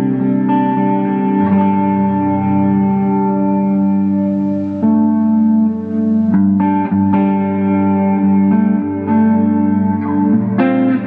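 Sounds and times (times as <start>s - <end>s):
clean electric guitar chords: 0.0s - 11.0s.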